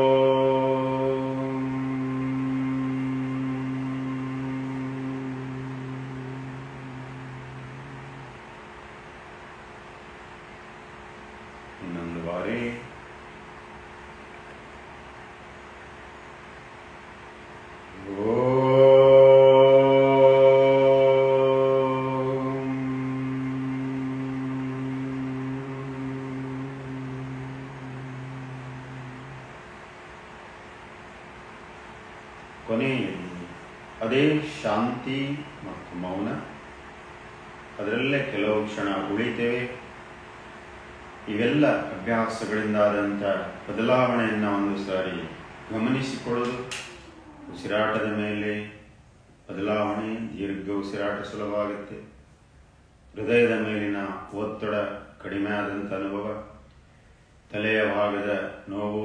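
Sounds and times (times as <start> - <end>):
man chanting low steady pitch: 0.0 - 8.6, 11.8 - 13.0, 17.9 - 29.8, 32.6 - 36.7, 37.8 - 39.9, 41.2 - 48.9, 49.5 - 52.1, 53.1 - 56.6, 57.5 - 59.0
faint room hiss: 0.0 - 59.0.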